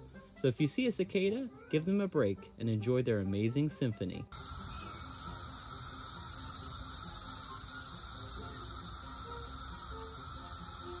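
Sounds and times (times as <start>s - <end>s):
cicadas droning: 0.0s - 11.0s.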